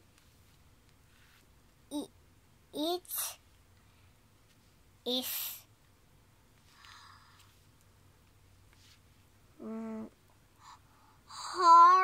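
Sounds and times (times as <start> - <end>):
child humming a note: 9.6 - 10.1.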